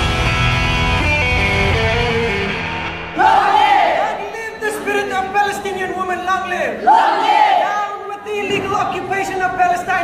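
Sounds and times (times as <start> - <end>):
music: 0.0 - 3.3
women shouting and cheering: 3.2 - 4.3, 6.8 - 7.9.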